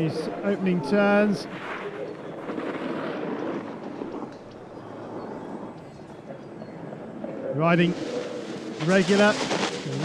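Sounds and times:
snowboard scraping on packed snow: 7.8 - 10.0.

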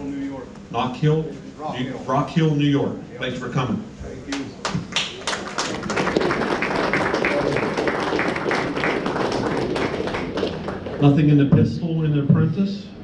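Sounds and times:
audience applauding: 4.3 - 11.3.

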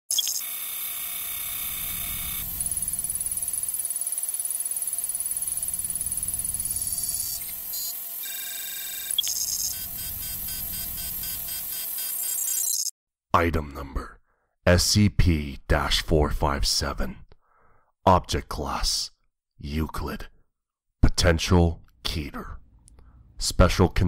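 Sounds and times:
high pulsing tone: 0.1 - 12.9
synthetic beeps and data tones: 0.1 - 12.9
steady hum: 0.8 - 12.0.

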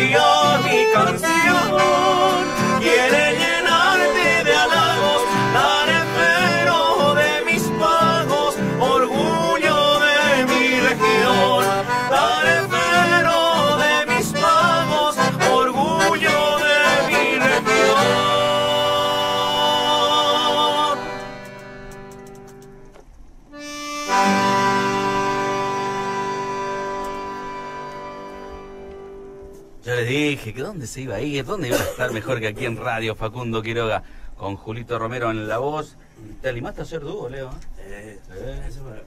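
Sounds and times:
men singing: 0.0 - 21.2
button accordion: 0.0 - 22.8, 23.5 - 29.6
strummed acoustic guitar: 0.0 - 22.9.

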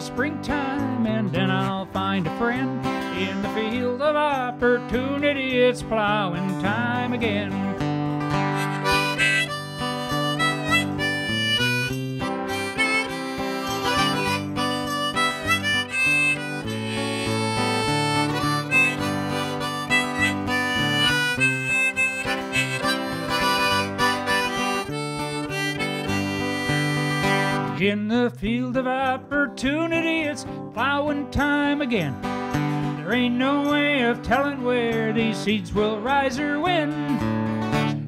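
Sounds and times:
person singing: 0.0 - 7.8, 8.6 - 32.2, 33.0 - 37.4
strummed acoustic guitar: 0.0 - 38.0
harmonica melody: 2.8 - 4.1, 7.2 - 27.9.

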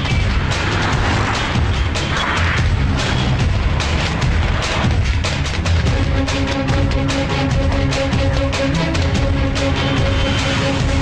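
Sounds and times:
heavy drum and percussion hits: 0.0 - 11.0.

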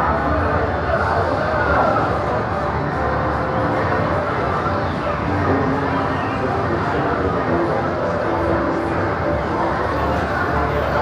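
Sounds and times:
hubbub of voices: 0.0 - 11.0.

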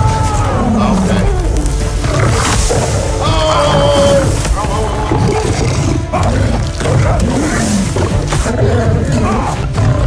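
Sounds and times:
film music: 0.0 - 10.0
lion roaring: 0.5 - 10.0.

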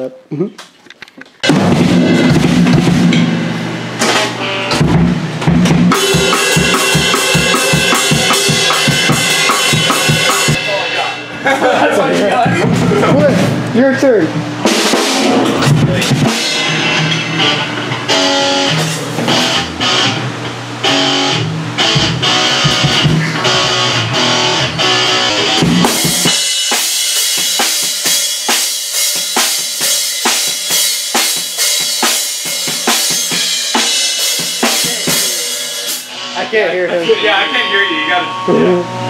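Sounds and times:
snare and cymbal hits: 1.4 - 11.6, 14.6 - 20.1, 20.8 - 36.4
electric guitar riffs and chords: 1.4 - 39.0.

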